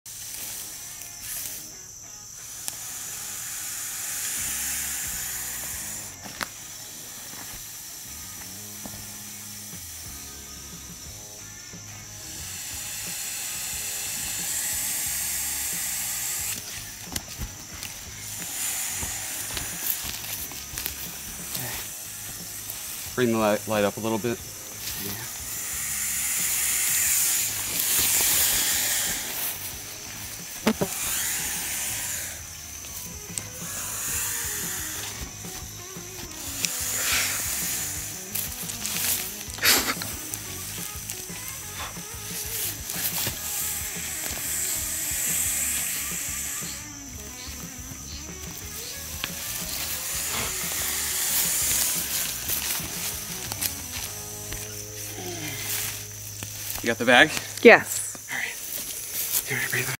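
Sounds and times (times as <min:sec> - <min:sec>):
snake hissing: 0:00.1 - 1:00.0.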